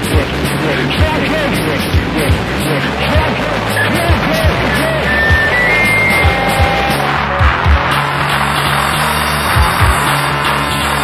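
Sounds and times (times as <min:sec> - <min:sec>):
distorted guitar and bass: 0:00.0 - 0:11.0.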